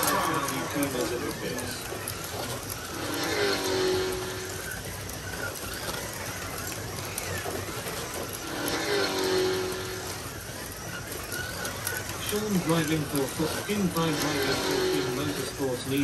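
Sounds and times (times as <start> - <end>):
slot car motors whining: 0.0 - 16.0.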